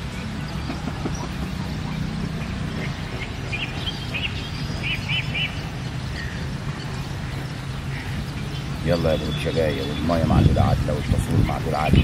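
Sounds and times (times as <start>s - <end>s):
small bird chirping: 0.0s - 12.0s.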